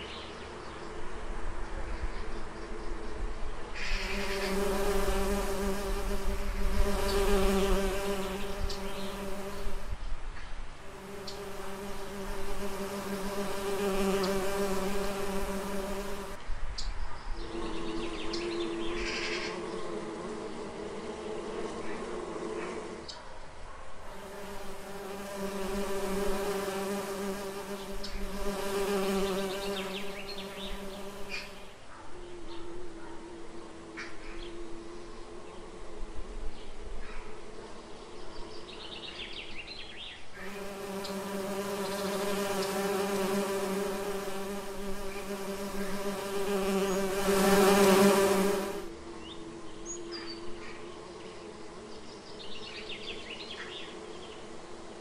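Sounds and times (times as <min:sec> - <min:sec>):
bees buzzing: 0:03.8 - 0:10.0, 0:10.8 - 0:16.4, 0:17.4 - 0:23.0, 0:24.1 - 0:31.7, 0:40.4 - 0:50.0.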